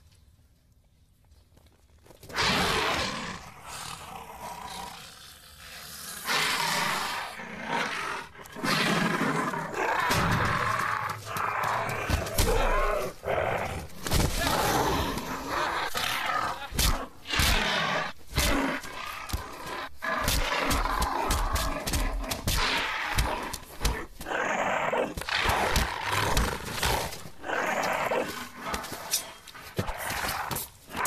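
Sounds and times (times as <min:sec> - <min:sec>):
animal-like cries and grunts: 0:02.3 - 0:31.0.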